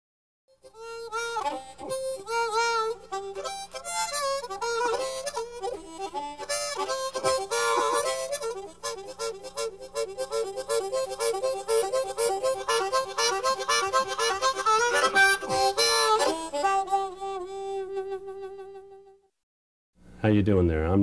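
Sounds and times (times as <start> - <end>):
solo harmonica: 0.5 - 19.3.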